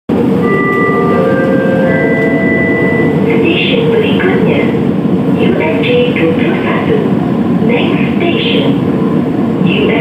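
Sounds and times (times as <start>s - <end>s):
train rumble inside carriage: 0.1s - 10.0s
recorded station announcement: 0.7s - 8.9s, 9.6s - 10.0s.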